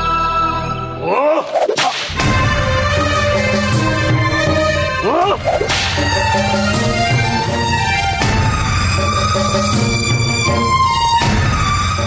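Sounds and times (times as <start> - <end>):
whip crack: 1.6 - 2.3
dramatic background music: 1.9 - 12.0.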